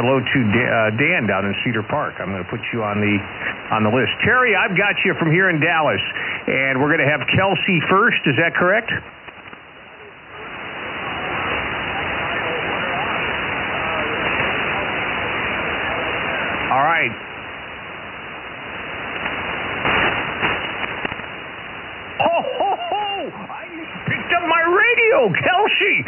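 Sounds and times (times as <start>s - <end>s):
shortwave receiver hiss: 0.0s - 26.0s
weak voice through radio noise: 0.1s - 17.3s, 23.2s - 26.0s.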